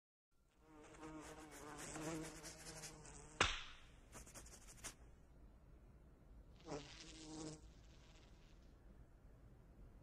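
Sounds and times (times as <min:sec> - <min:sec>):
fly buzzing: 0:00.6 - 0:03.5, 0:06.6 - 0:08.7
sharp smack: 0:03.4 - 0:03.9.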